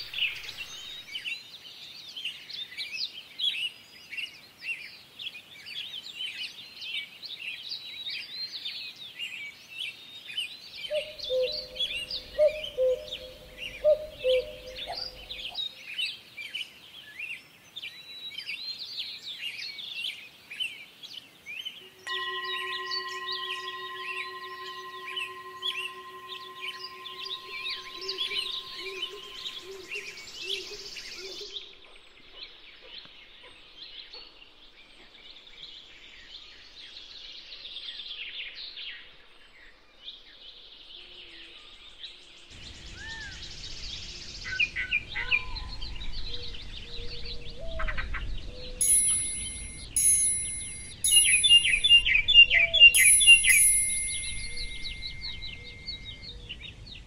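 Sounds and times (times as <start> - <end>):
songbirds chirping and trilling: 10.6 - 15.7, 44.6 - 57.0
ringing chime-like notes: 10.9 - 15.6, 22.0 - 30.9, 48.8 - 56.5
steady held tones: 10.9 - 15.6, 21.9 - 30.9, 48.8 - 52.3, 53.0 - 56.3.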